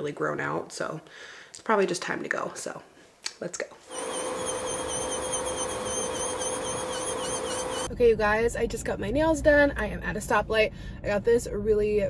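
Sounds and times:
high wavering whine: 3.9s - 7.9s.

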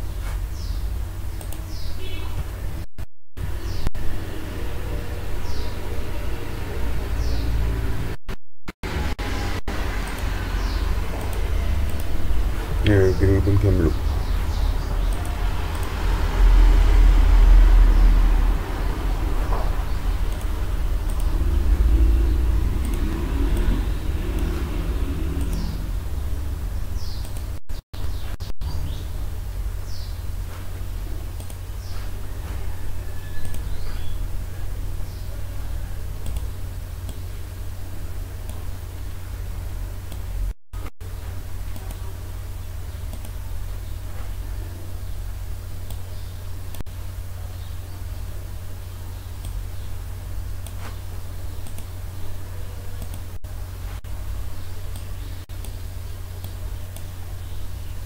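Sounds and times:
steady low hum: 0.0s - 8.2s, 8.8s - 58.0s.

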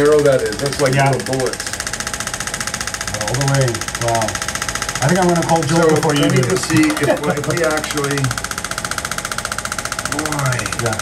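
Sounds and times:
shockwave applicator pulsing: 0.0s - 11.0s.

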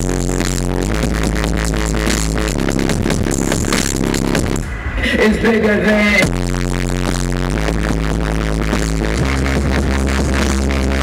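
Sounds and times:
loud distorted dubstep music: 0.0s - 11.0s.

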